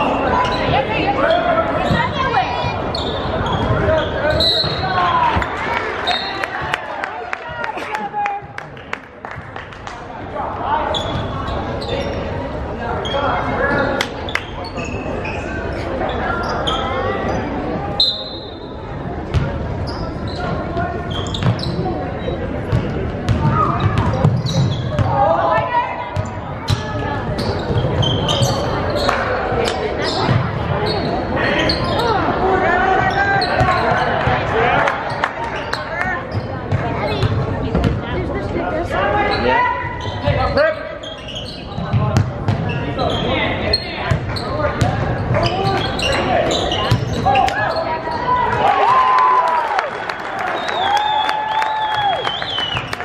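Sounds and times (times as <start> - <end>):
voices of players and spectators: 0.0 - 53.0.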